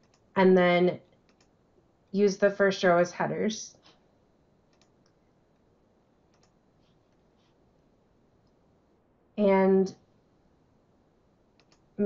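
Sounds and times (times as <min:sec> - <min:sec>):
computer mouse clicks: 0:00.0 - 0:00.3, 0:01.2 - 0:01.6, 0:04.7 - 0:05.2, 0:06.3 - 0:07.6, 0:11.5 - 0:11.9.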